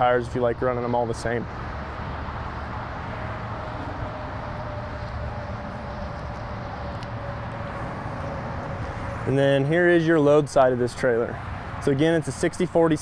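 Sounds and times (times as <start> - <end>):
outdoor background noise: 0.0 - 13.0.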